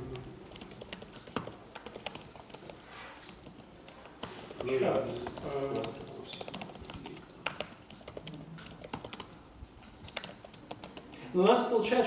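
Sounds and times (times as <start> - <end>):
typing on computer keyboard: 0.0 - 12.0.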